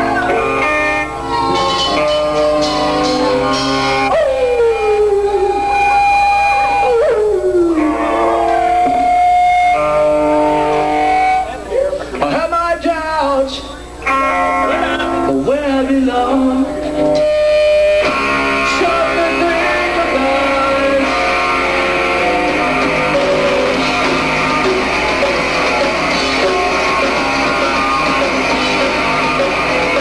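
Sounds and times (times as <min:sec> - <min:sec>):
bass guitar: 0:00.0 - 0:12.4, 0:13.9 - 0:30.0
distorted electric guitar: 0:00.0 - 0:30.0.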